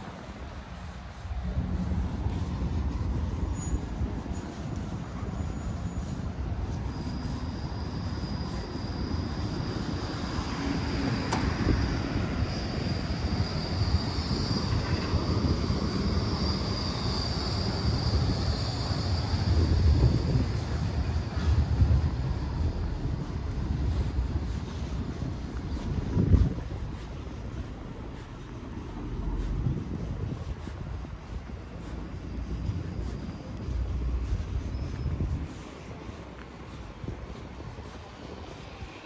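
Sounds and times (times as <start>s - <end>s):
high wavering whine: 0.0s - 39.0s
street traffic rumble: 0.0s - 39.0s.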